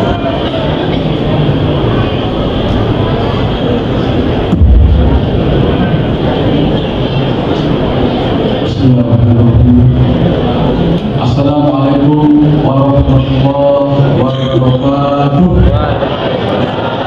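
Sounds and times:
loud steady rumbling: 0.0s - 17.0s
heavy low thump: 4.5s - 5.8s
man speaking over public address: 8.5s - 16.5s.

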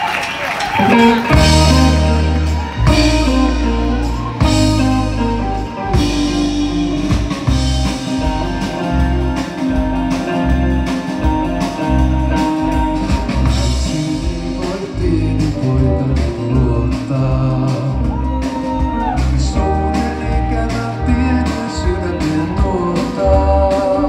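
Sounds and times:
live rock band playing: 0.0s - 24.0s.

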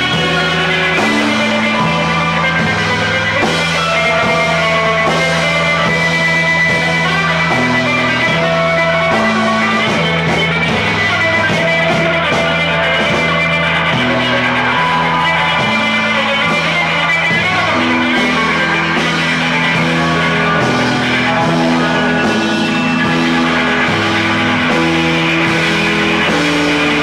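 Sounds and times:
electric guitar strumming: 0.0s - 27.0s
live rock band playing: 0.0s - 27.0s.

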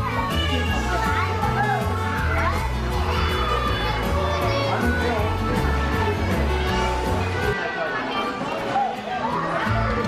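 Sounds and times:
music with steady bass line: 0.0s - 7.5s
children shouting: 0.0s - 10.0s.

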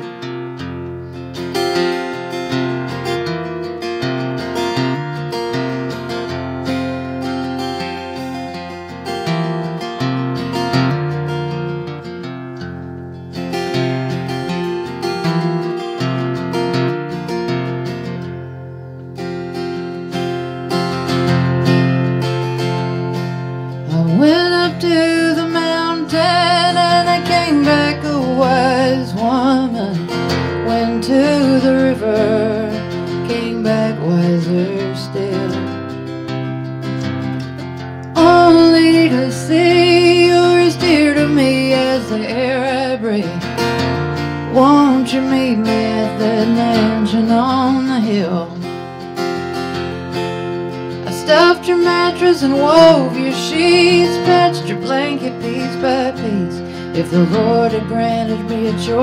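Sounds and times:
acoustic guitar playing: 0.0s - 59.0s
woman singing: 23.8s - 36.0s, 38.1s - 49.0s, 50.9s - 59.0s.

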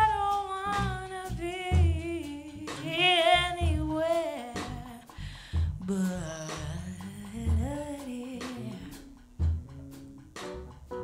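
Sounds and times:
jazz piano trio: 0.0s - 11.0s.

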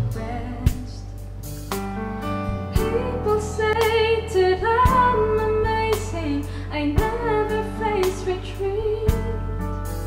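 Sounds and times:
steady bass: 0.0s - 10.0s.

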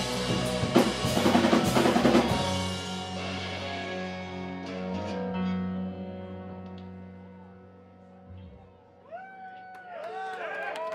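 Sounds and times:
live band final chord: 0.0s - 7.7s.

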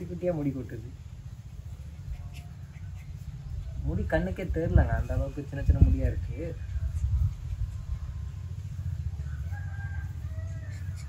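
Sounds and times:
steady low rumble: 0.0s - 11.0s
rooster crowing faintly: 6.6s - 11.0s.

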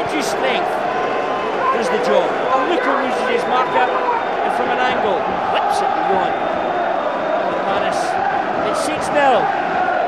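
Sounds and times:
tv commentator speaking: 0.0s - 0.8s, 1.7s - 6.4s, 7.5s - 9.5s
stadium crowd noise: 0.0s - 10.0s.

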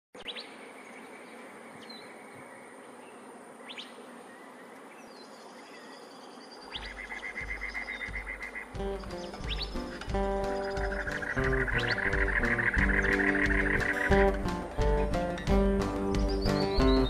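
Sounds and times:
insect drone: 0.2s - 17.0s
music with low pulsing beat: 7.4s - 17.0s.

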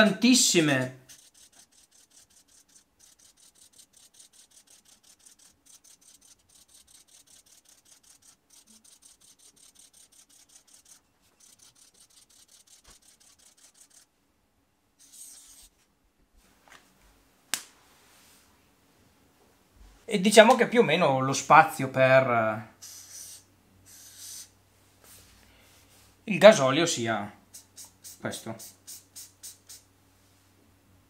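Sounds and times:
felt-tip marker strokes on paper: 0.4s - 14.1s, 15.0s - 15.7s, 22.8s - 24.5s, 27.5s - 29.9s.

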